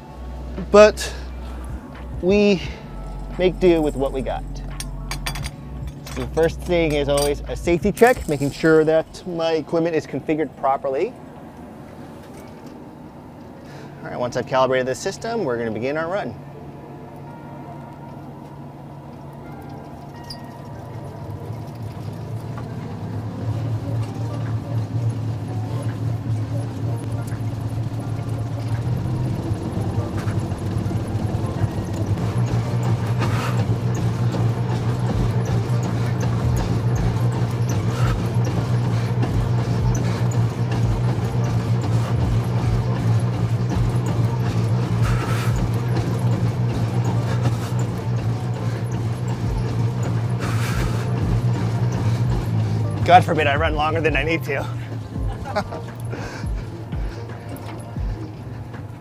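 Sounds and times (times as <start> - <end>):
treadmill motor hum: 0.0 - 59.0
running footfalls on treadmill belt: 21.1 - 59.0.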